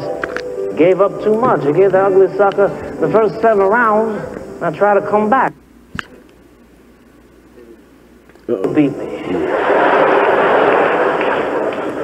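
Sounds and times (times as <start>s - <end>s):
audience laughing: 9.2s - 12.0s
audience applauding: 9.4s - 12.0s.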